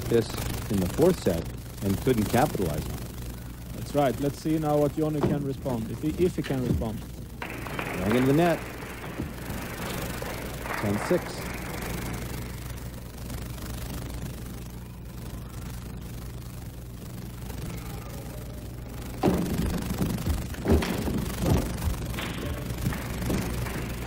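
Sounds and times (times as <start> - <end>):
faint hall noise: 0.0 - 24.0
steady low hum: 0.0 - 24.0.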